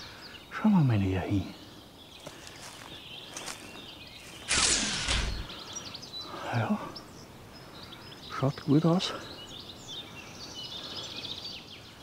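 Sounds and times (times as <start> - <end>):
faint songbird chirps: 0.0 - 12.0
loud rustle: 4.2 - 5.6.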